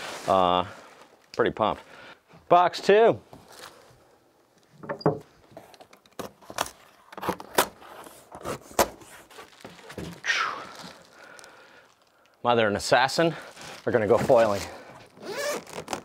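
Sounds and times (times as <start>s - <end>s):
cardboard rustling scrape: 13.6s - 14.8s.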